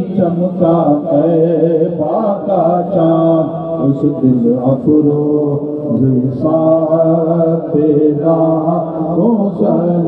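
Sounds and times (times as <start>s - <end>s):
person chanting devotional poem: 0.0s - 10.0s.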